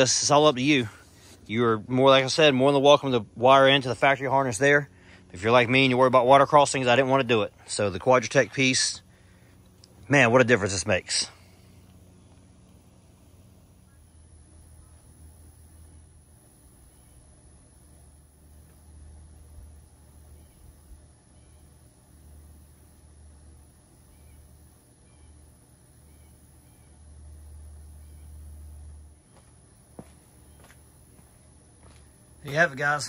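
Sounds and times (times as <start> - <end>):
faint bird chirps: 13.2 - 16.2, 16.8 - 17.4, 19.4 - 22.7, 23.9 - 29.5, 30.3 - 30.9.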